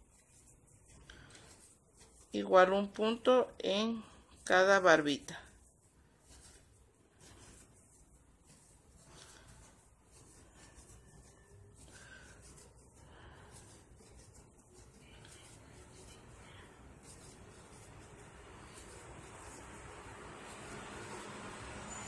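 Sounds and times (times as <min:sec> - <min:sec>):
yarn rubbing on crochet hook: 0:00.0 - 0:22.0.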